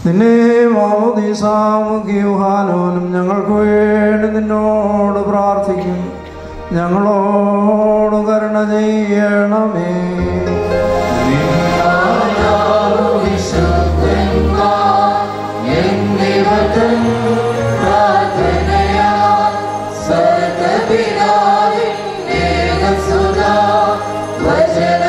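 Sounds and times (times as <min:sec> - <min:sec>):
choir singing a hymn: 0:10.5 - 0:25.0.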